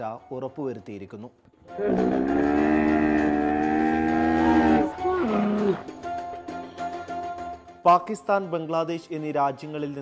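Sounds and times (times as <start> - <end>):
camel moaning: 1.7 - 5.9.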